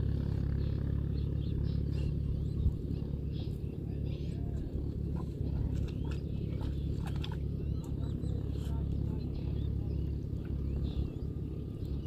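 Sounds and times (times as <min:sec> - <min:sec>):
tractor diesel engine idling: 0:00.0 - 0:12.0
bird chirping: 0:00.5 - 0:12.0.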